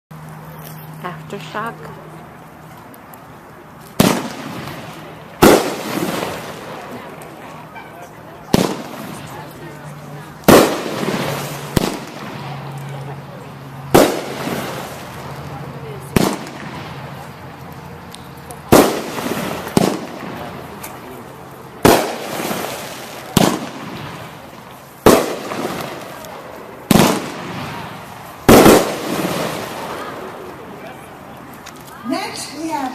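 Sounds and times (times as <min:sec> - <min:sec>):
firework launch report: 0:00.2 - 0:32.9.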